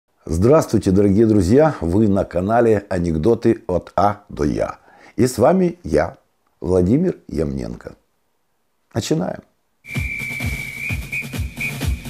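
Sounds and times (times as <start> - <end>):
high whistle-like tone: 9.8 - 12.0
electronic music with kick drum: 9.9 - 12.0.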